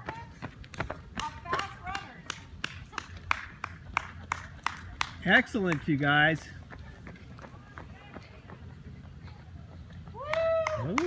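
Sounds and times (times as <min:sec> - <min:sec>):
hand clapping: 0:01.2 - 0:06.0, 0:10.3 - 0:11.0.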